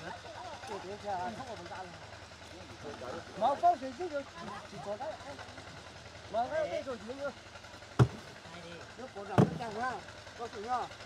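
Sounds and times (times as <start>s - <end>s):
men talking: 0.0s - 7.4s, 8.0s - 10.9s
sharp knocks: 8.0s - 8.3s, 9.3s - 9.7s.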